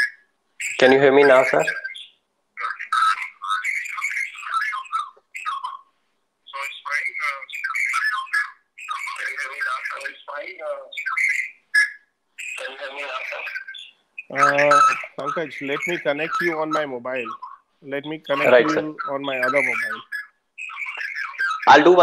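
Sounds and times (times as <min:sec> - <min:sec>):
tinny voice over video call: 0:00.6 - 0:02.0, 0:02.6 - 0:05.9, 0:06.5 - 0:11.6, 0:12.4 - 0:22.0.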